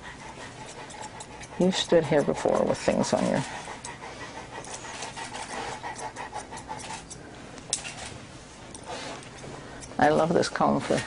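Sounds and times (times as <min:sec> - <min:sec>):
dog panting: 0:00.0 - 0:07.2, 0:08.7 - 0:11.0.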